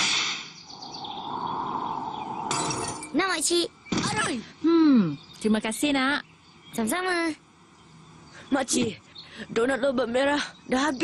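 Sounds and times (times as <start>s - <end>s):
rising whoosh: 0.0s - 3.1s
shimmering hiss: 0.0s - 3.6s.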